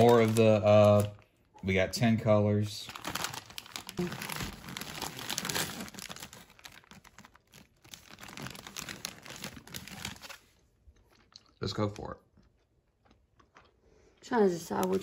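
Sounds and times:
paper and plastic crinkling: 0:00.0 - 0:10.6, 0:14.6 - 0:15.0.

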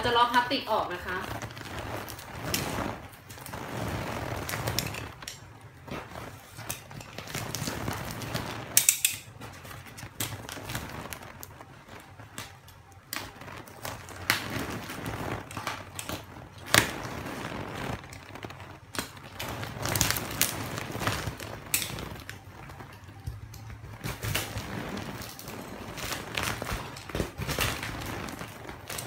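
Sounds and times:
plastic wrapping crinkling: 0:00.0 - 0:29.0.

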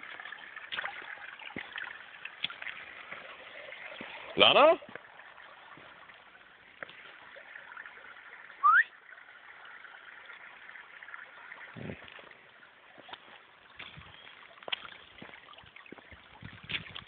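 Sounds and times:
water trickling over stones: 0:00.0 - 0:17.0
short rising whistle: 0:08.6 - 0:08.9.

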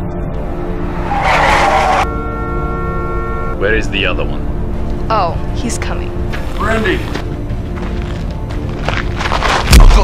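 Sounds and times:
dark background music drone: 0:00.0 - 0:10.0
loud harsh screech: 0:00.9 - 0:02.1.

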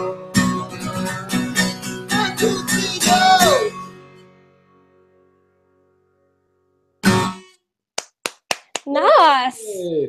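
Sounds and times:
loud acoustic guitar strum: 0:00.0 - 0:04.8, 0:07.0 - 0:07.6
acoustic guitar notes ringing: 0:00.0 - 0:07.6.

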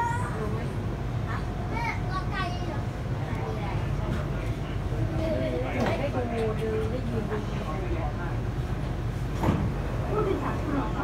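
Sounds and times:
faint voices of people: 0:00.0 - 0:09.0, 0:09.8 - 0:11.0
train low hum: 0:00.0 - 0:11.0.

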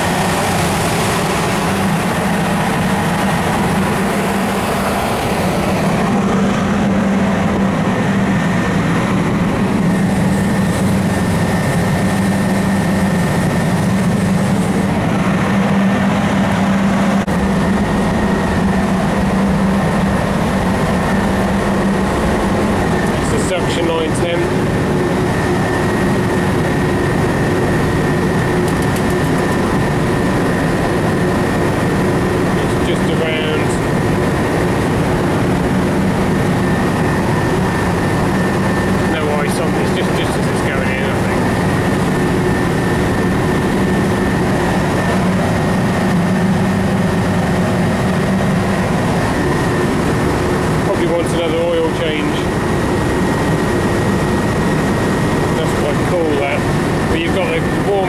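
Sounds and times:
compressor and fan humming: 0:00.0 - 0:58.0
steady whine: 0:00.0 - 0:58.0.

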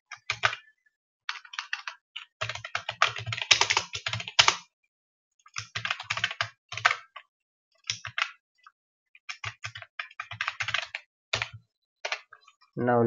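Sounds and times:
typing on keyboard: 0:00.1 - 0:00.7, 0:01.3 - 0:04.7, 0:05.5 - 0:08.4, 0:09.2 - 0:12.5.

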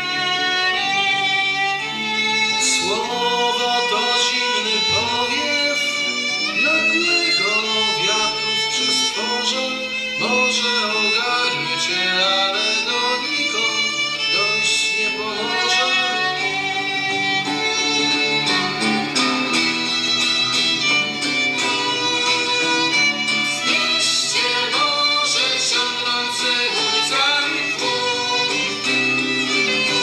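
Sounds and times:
acoustic guitar strumming: 0:00.0 - 0:30.0
person singing: 0:00.0 - 0:30.0
violin melody: 0:00.0 - 0:30.0.

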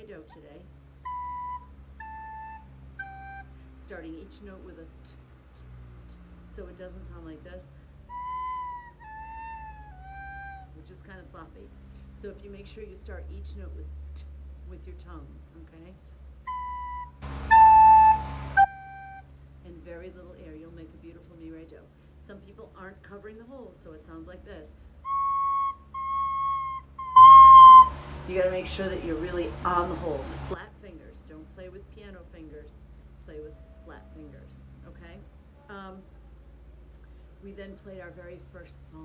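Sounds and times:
recorder playing descending notes: 0:01.0 - 0:03.4, 0:08.1 - 0:10.7, 0:16.5 - 0:19.2, 0:25.0 - 0:28.2.

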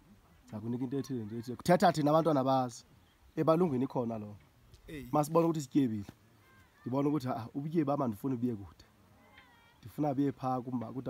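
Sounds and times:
man speaking: 0:00.5 - 0:02.8, 0:03.4 - 0:06.2, 0:09.8 - 0:11.0.

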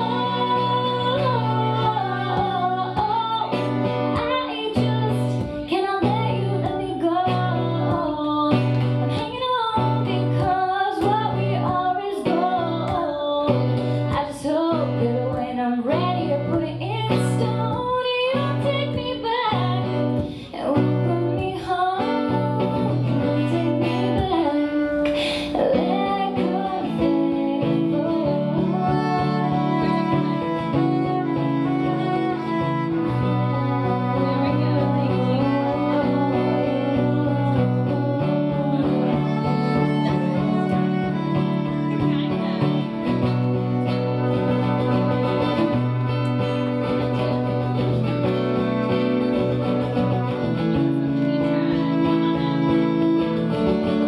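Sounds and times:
strummed acoustic guitar: 0:00.0 - 0:54.0
woman singing: 0:00.0 - 0:54.0
cello low notes: 0:28.1 - 0:54.0.

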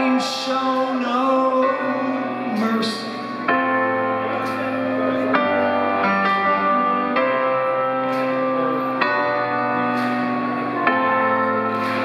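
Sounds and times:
bell-like keyboard chords: 0:00.0 - 0:12.0.

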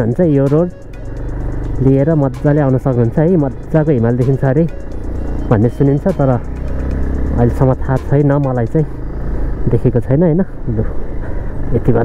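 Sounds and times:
man talking: 0:00.0 - 0:00.8, 0:01.8 - 0:04.7, 0:05.4 - 0:06.5, 0:07.3 - 0:08.9, 0:09.7 - 0:11.0, 0:11.7 - 0:12.0
motorcycle engine rumble: 0:00.0 - 0:12.0.

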